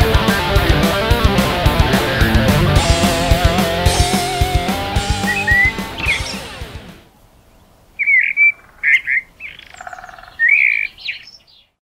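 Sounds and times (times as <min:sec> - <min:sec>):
guitar music: 0:00.0 - 0:07.1
bird chirps: 0:02.8 - 0:06.8, 0:08.0 - 0:11.8.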